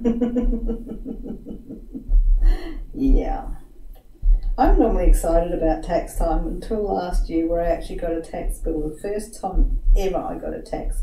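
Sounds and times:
woman chuckling: 0.0 - 2.8.

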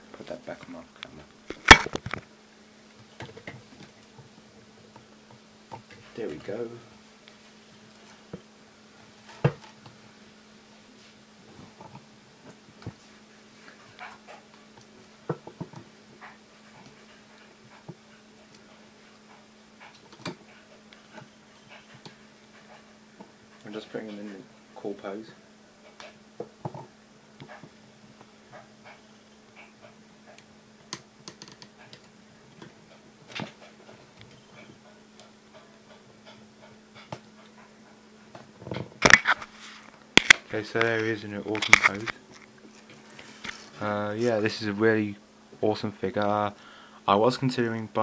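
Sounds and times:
faint steady hum: 0.0 - 48.0.

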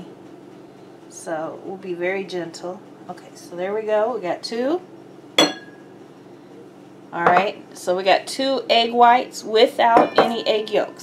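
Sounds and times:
glass bowl clinking: 5.4 - 5.9, 10.0 - 10.8.

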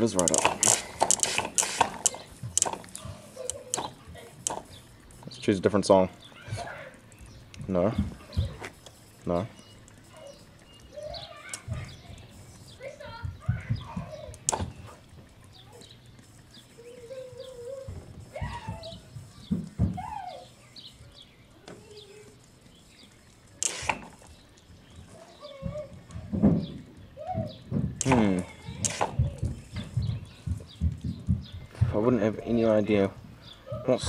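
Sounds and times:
sharp clicks: 0.0 - 5.5, 6.5 - 27.1, 28.0 - 31.7
birds chirping: 0.0 - 34.0.

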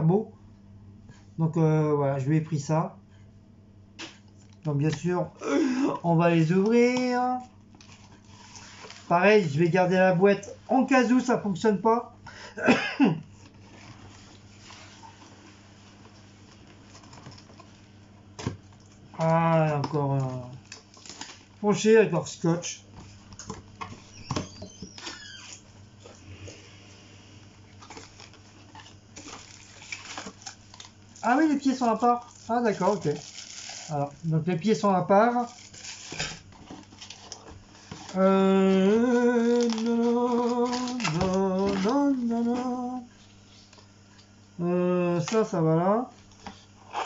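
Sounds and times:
plastic wrap crinkling: 18.8 - 26.1, 27.6 - 43.9
man's drawn out voice: 38.2 - 43.0.

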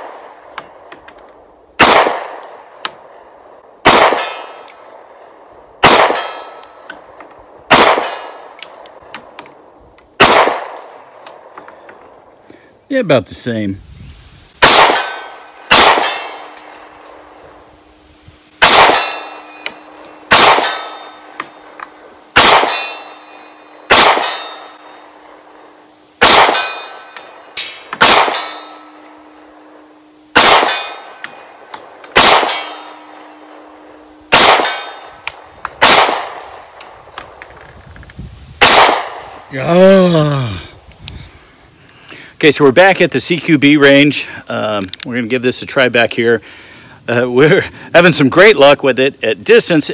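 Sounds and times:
pistol shots with echoing tail: 1.8 - 3.2, 3.8 - 4.7, 5.8 - 6.9, 7.7 - 8.6, 10.2 - 11.0, 14.6 - 17.2, 18.6 - 25.2, 26.2 - 29.3, 30.3 - 36.8, 38.6 - 39.4.

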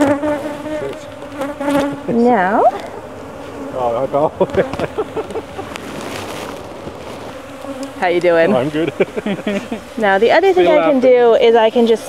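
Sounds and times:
bees buzzing close by: 0.0 - 12.0.

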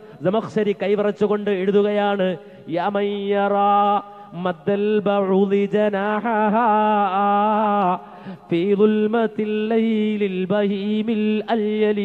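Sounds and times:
man chanting into microphone: 0.1 - 12.0.

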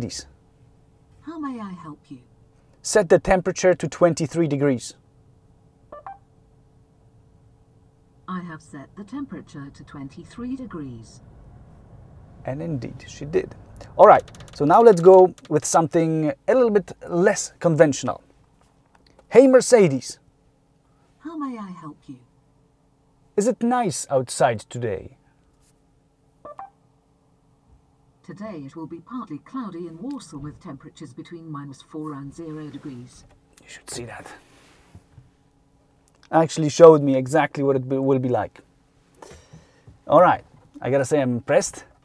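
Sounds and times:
faint steady hum: 0.0 - 42.0
short electronic beep: 5.9 - 6.2, 26.5 - 26.8.

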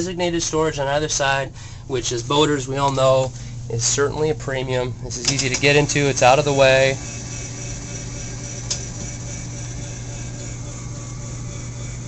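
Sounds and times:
electric motor hum: 1.8 - 12.0
actuator click: 5.2 - 5.8, 8.6 - 9.1.

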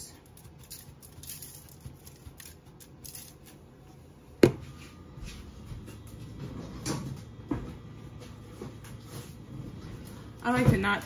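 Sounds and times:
seasoning patter from shaker: 0.1 - 3.6.

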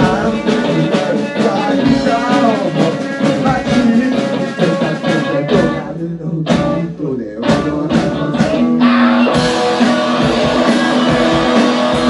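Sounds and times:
distorted electric guitar: 0.0 - 12.0
drums with cymbal crashes: 0.0 - 12.0.

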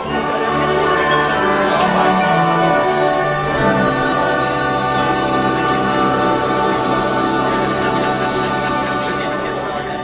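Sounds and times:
opera ensemble singing: 0.0 - 10.0.

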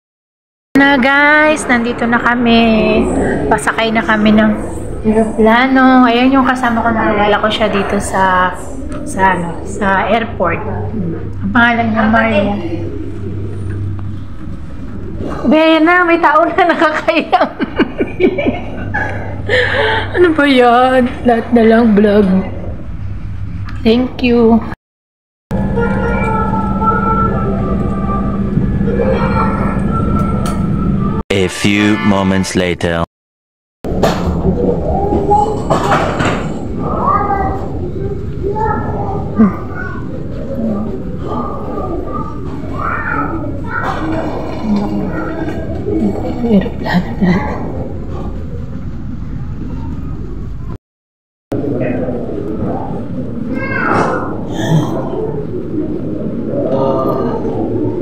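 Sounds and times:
indistinct voices: 0.8 - 17.5, 25.5 - 33.1, 33.9 - 50.6, 51.5 - 58.0
busy airport background noise: 0.8 - 22.9, 25.6 - 31.9, 34.0 - 50.7, 51.6 - 58.0.

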